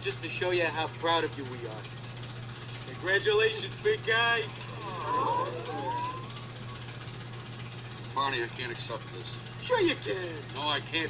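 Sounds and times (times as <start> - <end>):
crowd saying ooh: 4.6 - 6.6
voice gliding upward: 4.7 - 6.4.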